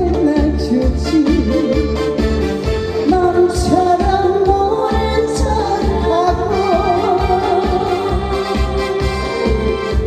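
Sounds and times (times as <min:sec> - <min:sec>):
woman singing into a microphone: 0:00.0 - 0:02.2, 0:02.9 - 0:10.0.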